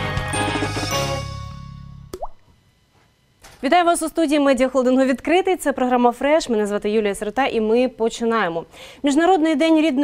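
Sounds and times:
rising bloop sound effect: 2.1s - 2.5s.

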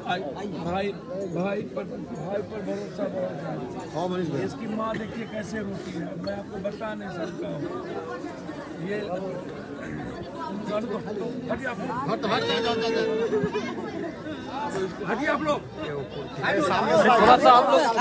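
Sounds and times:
crowd chatter: 0.0s - 18.0s
woman wailing and crying: 12.2s - 13.7s.

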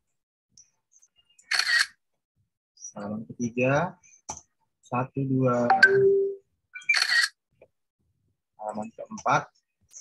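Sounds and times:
camera shutter click: 1.5s - 1.9s.

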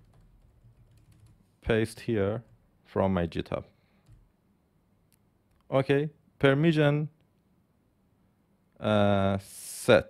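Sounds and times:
faint keyboard typing: 0.0s - 1.5s, 2.4s - 2.7s, 3.9s - 4.4s.

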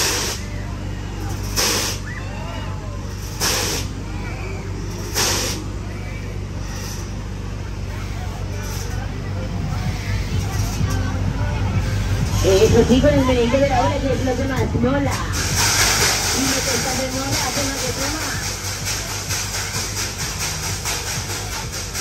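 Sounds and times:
faint crowd voices: 0.0s - 22.0s
fairground ride machinery hum: 0.0s - 22.0s
short hisses: 1.4s - 2.1s, 3.3s - 3.9s, 5.0s - 5.6s.

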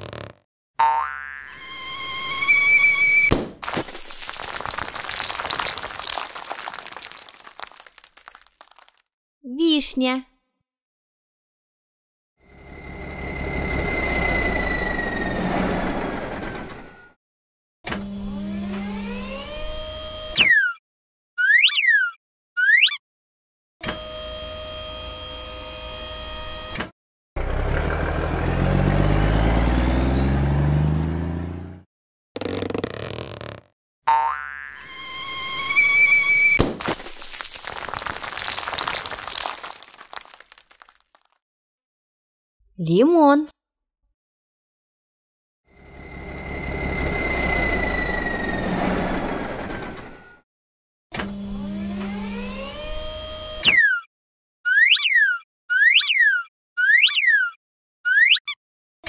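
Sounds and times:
plastic egg cracking: 3.3s - 9.0s, 36.6s - 41.3s
pieces scattering: 3.6s - 9.0s, 36.6s - 41.4s
cartoon truck engine: 12.4s - 17.1s, 27.4s - 31.8s, 45.8s - 50.4s.

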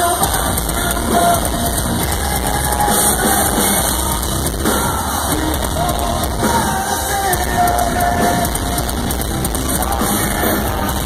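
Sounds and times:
live metalcore band playing: 0.0s - 11.0s.

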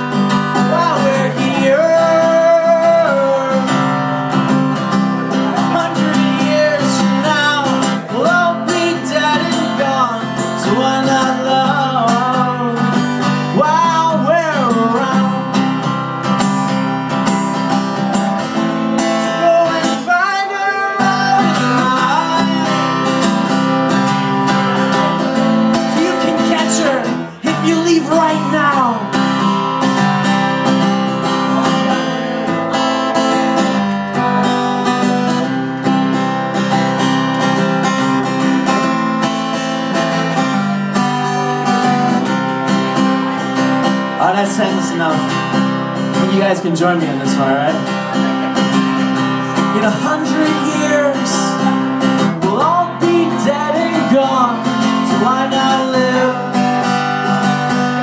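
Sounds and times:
man singing: 0.0s - 16.5s, 17.1s - 35.6s, 41.6s - 58.0s
acoustic guitar strumming: 0.0s - 58.0s.

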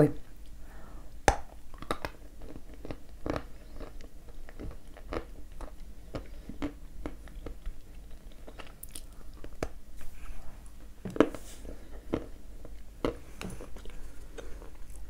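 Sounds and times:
clay cracking in a bite: 1.3s - 9.8s
crunching chewing: 1.7s - 15.0s.

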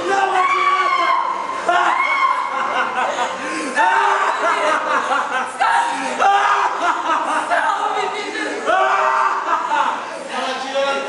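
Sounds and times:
many overlapping voices: 0.0s - 11.0s.

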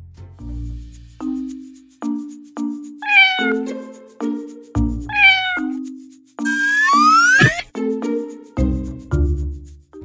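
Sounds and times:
background music with steady beat: 0.1s - 3.0s, 7.7s - 10.0s
cat meowing: 3.0s - 3.7s, 5.1s - 5.8s, 6.5s - 7.6s.

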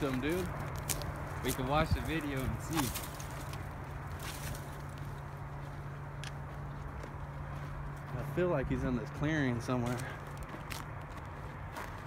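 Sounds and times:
brush rustling: 0.0s - 8.3s
faint footsteps on dry ground: 0.0s - 12.0s
steady low hum: 0.0s - 12.0s.

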